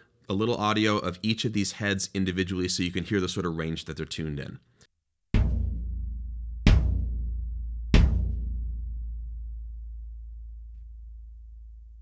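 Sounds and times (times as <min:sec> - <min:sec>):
bass drum booming: 0:05.4 - 0:11.4.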